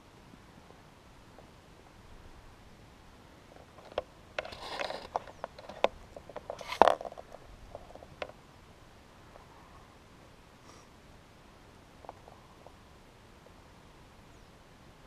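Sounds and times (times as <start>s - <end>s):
camera handling clicks and scrapes: 3.9s - 7.1s.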